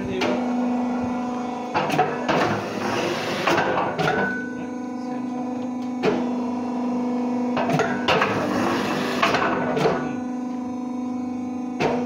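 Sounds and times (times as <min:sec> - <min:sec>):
machine motor hum: 0:00.0 - 0:12.0.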